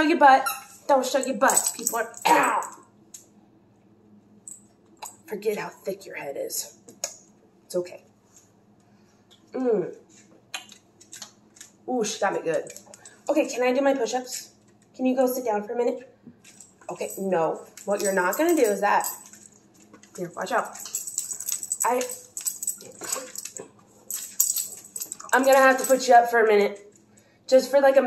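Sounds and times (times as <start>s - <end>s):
light clicking and jingling: 1.1s - 2.8s, 16.4s - 27.1s
dog claws clicking on hardwood floor: 10.6s - 11.8s.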